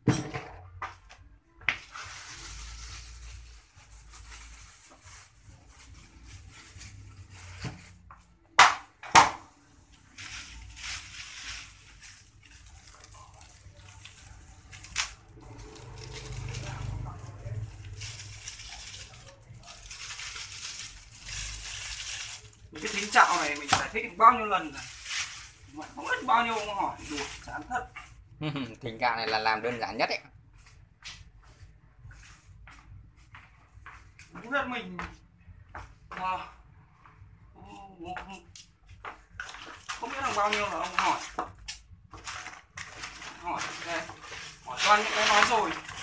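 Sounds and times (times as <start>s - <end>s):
plastic bag rustling and crinkling: 1.5s - 8.5s, 9.5s - 30.2s, 39.2s - 46.0s.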